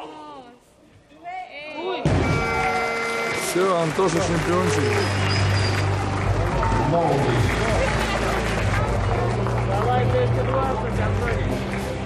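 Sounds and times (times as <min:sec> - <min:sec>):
crowd cheering: 0:02.0 - 0:12.0.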